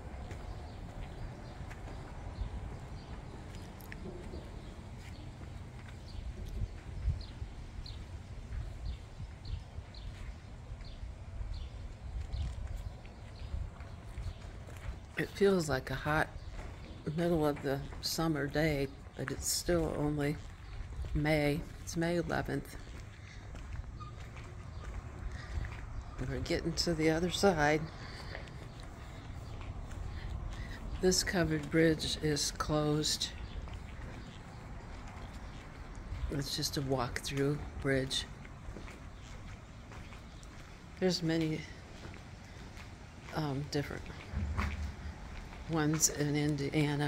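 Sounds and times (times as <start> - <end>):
steady low rumble: 0.0 - 46.8
songbird chirping: 0.0 - 47.0.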